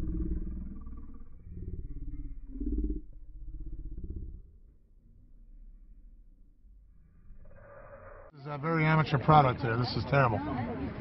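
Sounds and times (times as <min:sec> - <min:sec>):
slowed-down voices growling: 0:00.0 - 0:08.3.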